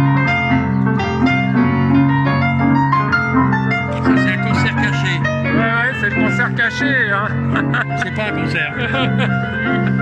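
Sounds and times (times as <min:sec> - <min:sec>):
electric piano chords: 0:00.0 - 0:10.0.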